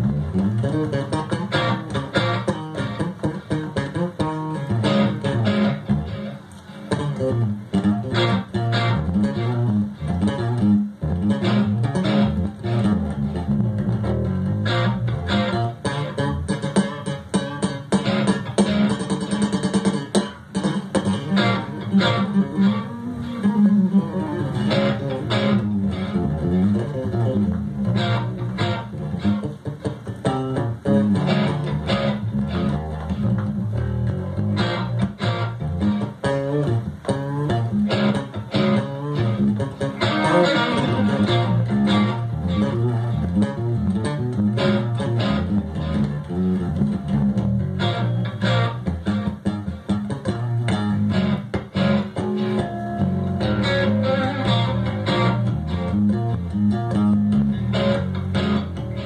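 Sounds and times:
electric guitar lines: 0.0s - 59.0s
plucked electric bass line: 0.0s - 59.0s.

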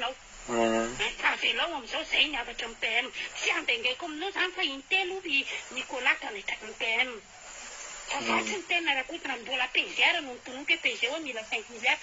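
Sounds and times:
faint hiss: 0.0s - 12.0s
person speaking: 0.5s - 7.2s, 8.1s - 12.0s.

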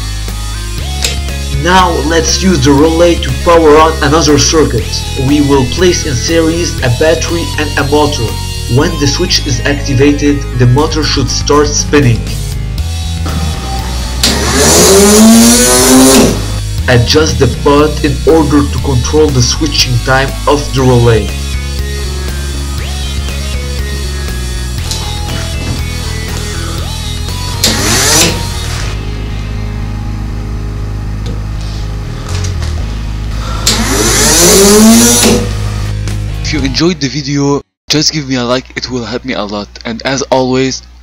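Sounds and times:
background music: 0.0s - 37.6s
motor revving whine: 12.8s - 16.9s, 21.2s - 36.2s
small motor whirring: 14.1s - 16.6s, 27.4s - 29.0s, 33.4s - 35.6s.

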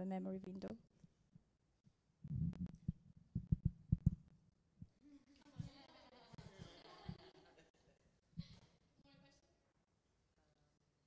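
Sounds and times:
microphone handling thumps: 2.2s - 4.3s.

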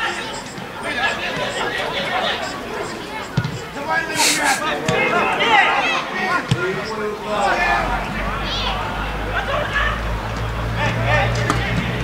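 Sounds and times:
players calling and shouting: 0.0s - 12.0s.

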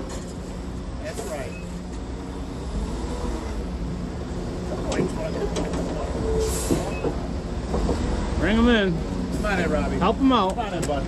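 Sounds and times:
diesel truck engine rumbling: 0.0s - 11.0s.

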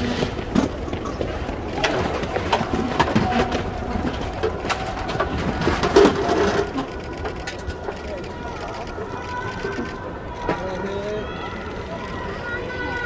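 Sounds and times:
low voices: 0.0s - 13.0s.

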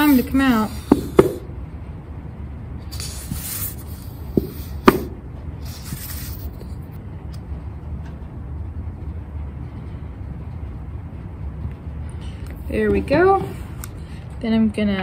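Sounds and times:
glue bottle hissing: 2.9s - 6.6s.

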